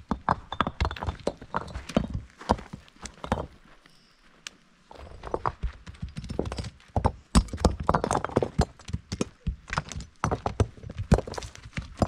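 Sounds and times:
stones knocking together: 0.0 - 3.8, 4.9 - 12.0.

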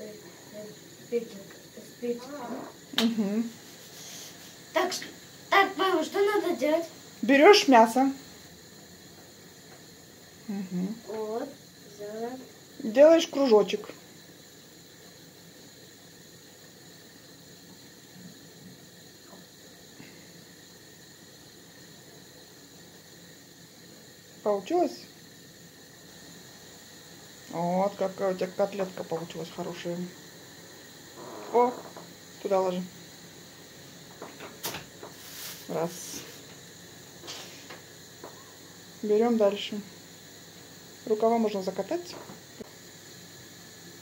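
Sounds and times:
room tone hiss: 0.0 - 44.0
soft rustles: 35.1 - 36.4.

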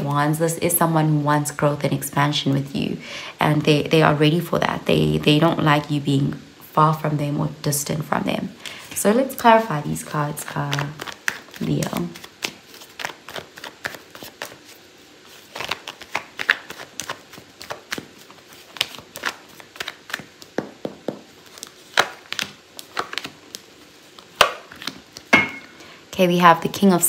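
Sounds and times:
cards being shuffled: 10.0 - 25.3.

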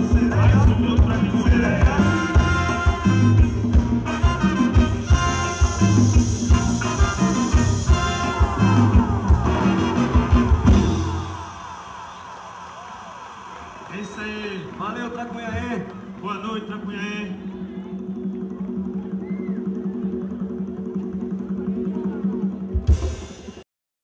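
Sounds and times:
live band playing upbeat music: 0.0 - 11.6, 15.4 - 23.6.

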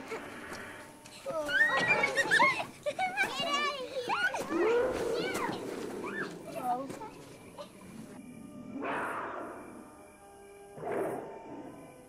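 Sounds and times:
children shouting and chattering: 0.0 - 8.2.

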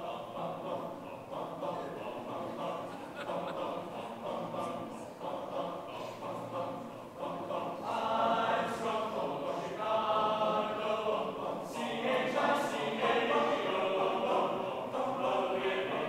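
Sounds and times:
men's choir singing in harmony: 0.0 - 16.0.

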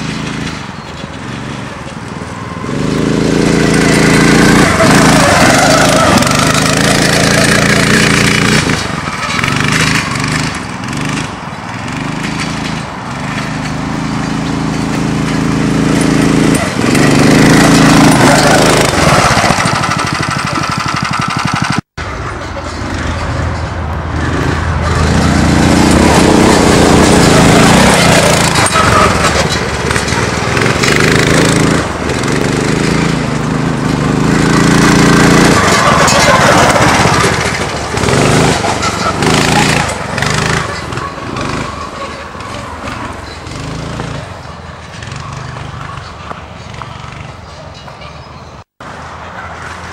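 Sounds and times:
go-kart engine revving: 0.0 - 47.5.

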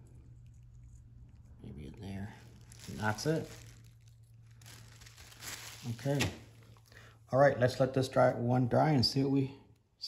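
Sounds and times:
bag crinkling: 2.3 - 7.0.

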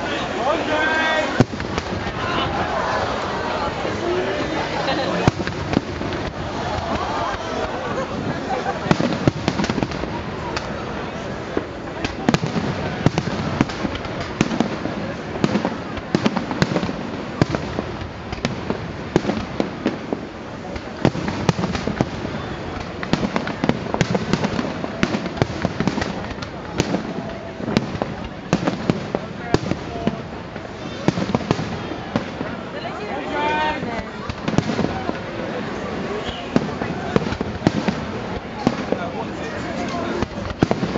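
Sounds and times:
fireworks bangs and crackles: 0.0 - 40.9.

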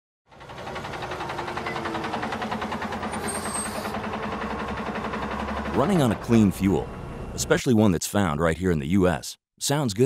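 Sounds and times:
engine idling: 0.3 - 7.6.

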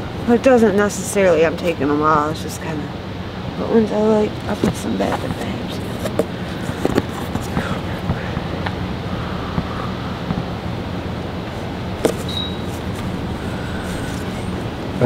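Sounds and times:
low motor hum: 1.6 - 15.0
clothes and boxes rustling: 4.5 - 8.4, 12.0 - 15.0.

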